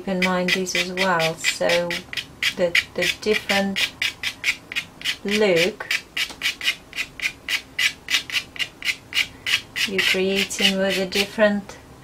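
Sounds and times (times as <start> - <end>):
pastel scratching on paper: 0.1 - 11.3.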